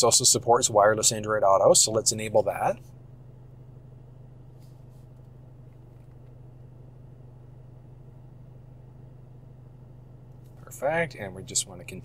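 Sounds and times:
faint low cabin hum: 0.0s - 12.0s.

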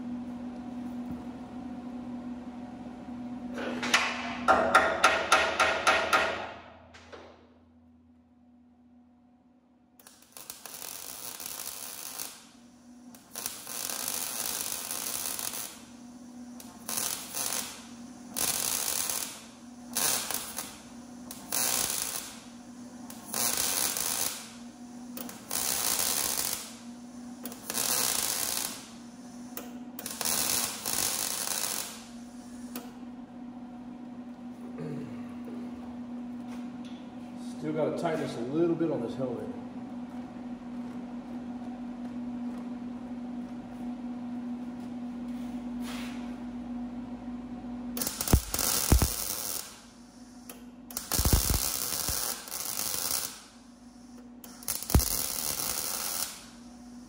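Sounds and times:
welder low hum: 0.0s - 57.0s
welding arc crackling hiss: 10.0s - 33.0s, 47.9s - 57.0s.

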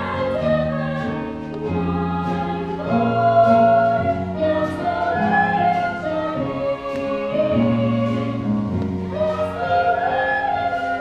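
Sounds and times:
musical theatre singing: 0.0s - 11.0s
small pit orchestra: 0.0s - 11.0s.

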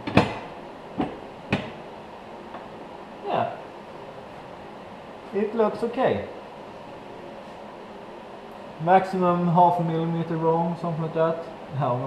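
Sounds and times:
sharp knocks on metal: 0.0s - 1.8s.

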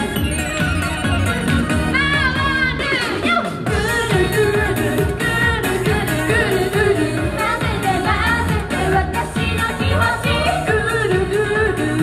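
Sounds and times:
pop backing track with beat: 0.0s - 12.0s
women singing into microphones: 1.8s - 12.0s.

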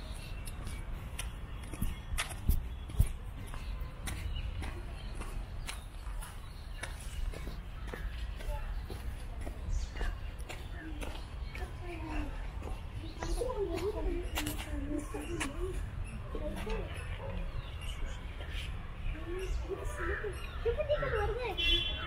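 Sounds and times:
footsteps: 0.0s - 17.3s
faint distant voices: 0.0s - 22.0s.

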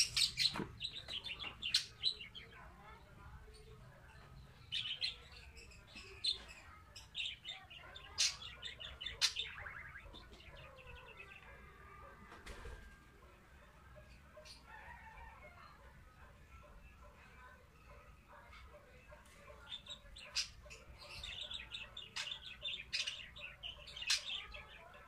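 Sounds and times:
small birds chirping: 0.0s - 25.0s.

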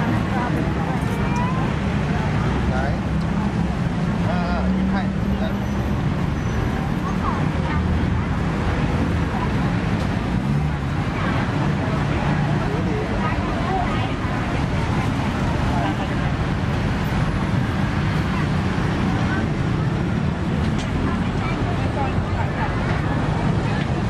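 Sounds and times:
traffic rumble: 0.0s - 24.0s
voices of passers-by: 0.0s - 24.0s.

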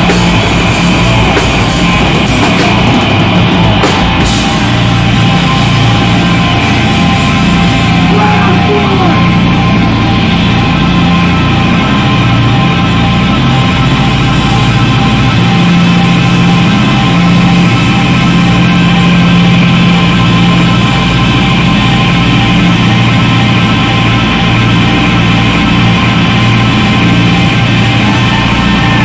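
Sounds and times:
bass guitar: 0.0s - 29.0s
drums: 0.0s - 29.0s
electric guitar: 0.0s - 29.0s.

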